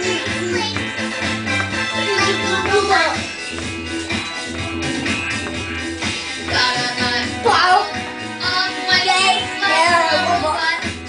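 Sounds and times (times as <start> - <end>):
child singing along: 0.0 - 0.9, 6.5 - 11.0
pop music playing: 0.0 - 11.0.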